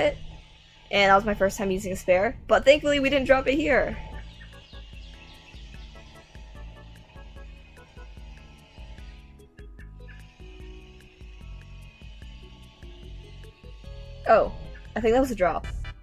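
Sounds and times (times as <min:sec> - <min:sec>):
music with steady beat and bass: 0:04.2 - 0:15.0, 0:15.6 - 0:16.0.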